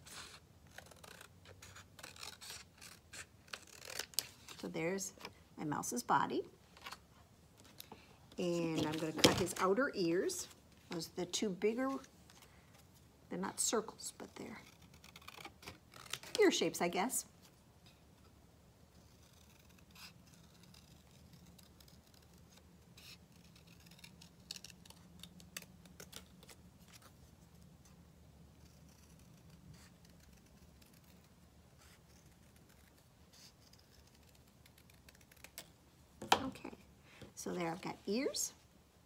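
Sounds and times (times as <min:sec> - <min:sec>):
scissors snipping paper: 0:19.0 - 0:26.6.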